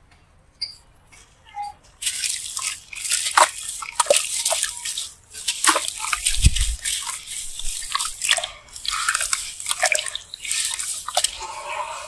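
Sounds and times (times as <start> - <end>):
water splashing and sloshing: 1.9 - 12.0
water dripping into basin: 2.0 - 12.0.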